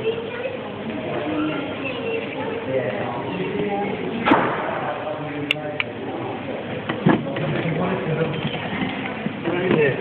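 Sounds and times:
thud in cage: 4.2 - 5.0.

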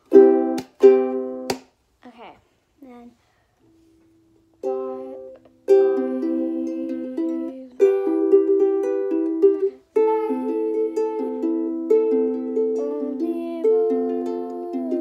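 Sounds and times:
ukulele strummed chords: 0.0 - 1.6, 4.6 - 15.0.

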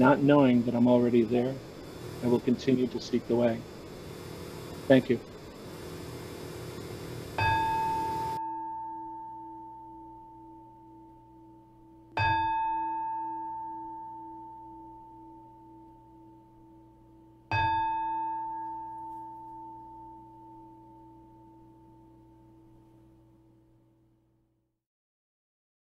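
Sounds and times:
meditation bell ringing: 7.4 - 16.9, 17.5 - 22.5.

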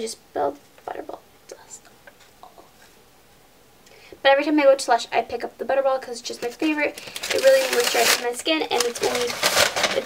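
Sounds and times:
faint whispering: 1.5 - 2.9.

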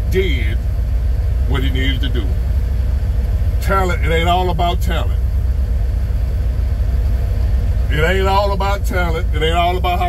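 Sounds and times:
car engine rumble inside cabin: 0.0 - 10.0.

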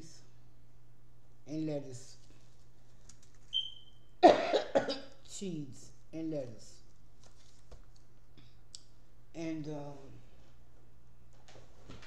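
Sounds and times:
woman coughing: 4.2 - 5.1.

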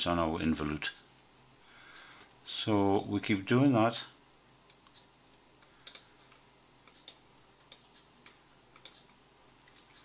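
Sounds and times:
low steady hiss: 0.0 - 10.0
computer mouse clicks: 4.7 - 10.0.

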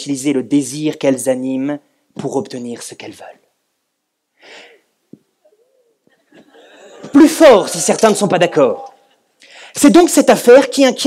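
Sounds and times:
quick gasp of breath: 4.4 - 4.9, 9.4 - 9.8.

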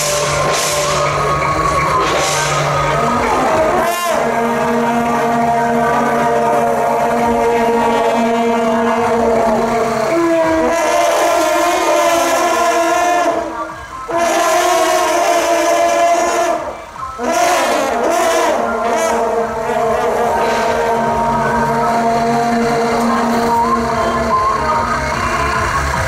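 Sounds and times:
procession horns blowing a chord: 0.0 - 26.0.

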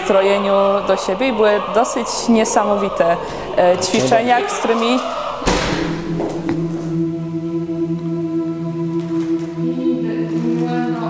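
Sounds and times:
choir holding a sustained chord: 0.0 - 11.0
thump: 5.4 - 7.0.

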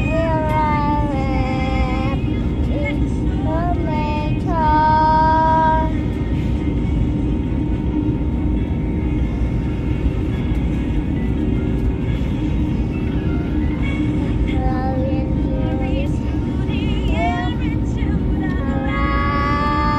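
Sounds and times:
airliner cabin drone: 0.0 - 19.9.

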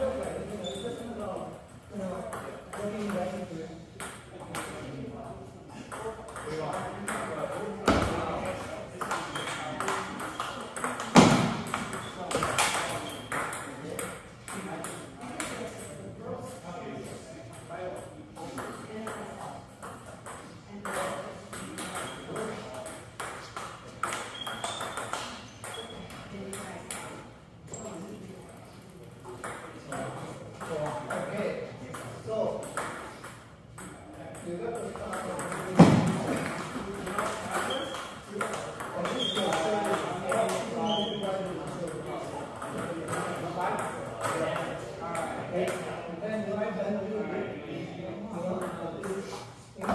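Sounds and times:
people talking: 0.0 - 23.1, 25.0 - 33.0, 33.8 - 49.9
table tennis ball bouncing: 1.6 - 3.3, 4.0 - 4.8, 5.9 - 8.3, 9.0 - 16.0, 17.5 - 27.2, 29.3 - 45.9.

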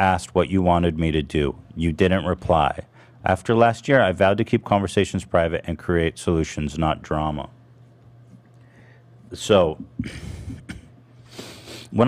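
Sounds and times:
person breathing in: 11.2 - 11.9.

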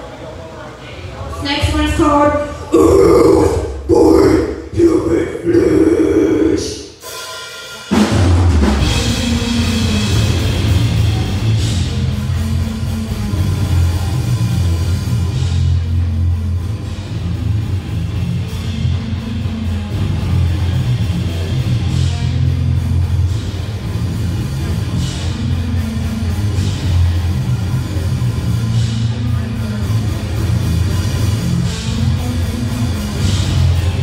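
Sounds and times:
death metal band playing live: 2.7 - 34.0.

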